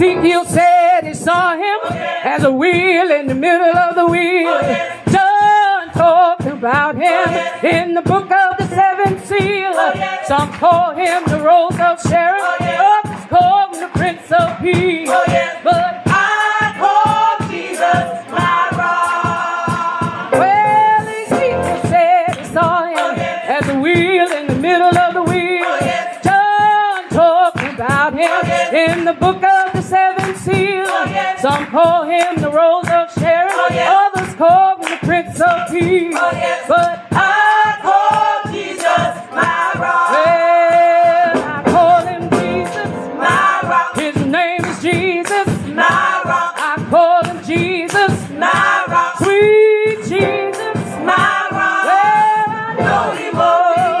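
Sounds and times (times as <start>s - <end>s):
a cappella gospel group singing: 0.0s - 54.0s.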